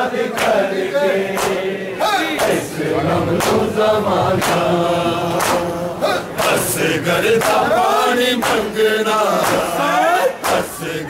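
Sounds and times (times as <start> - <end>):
crowd of men chanting: 0.0 - 11.0.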